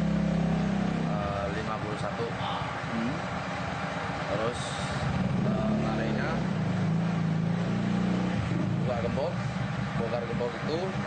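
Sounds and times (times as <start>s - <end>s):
vehicle engine running: 0.0s - 11.0s
faint voices: 1.5s - 3.3s.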